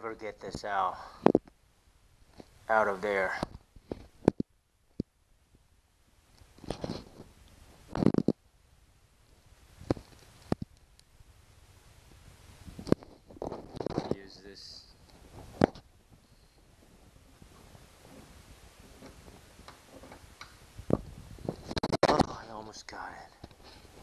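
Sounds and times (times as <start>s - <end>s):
rustling: 6.3s - 8.4s, 9.2s - 24.0s.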